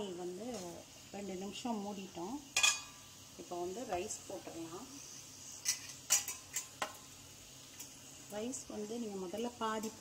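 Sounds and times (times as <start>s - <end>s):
spatula scraping a pan: 5.4s - 7.0s.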